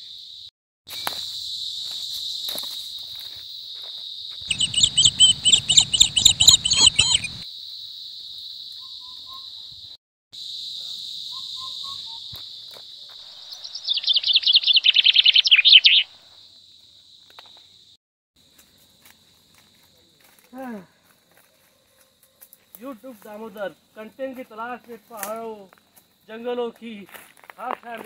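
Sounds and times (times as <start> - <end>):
rapidly pulsing insect call: 0.0 - 27.5
forest insects droning: 0.0 - 28.0
short whistled bird notes: 4.5 - 7.4, 11.3 - 12.3, 13.6 - 16.1.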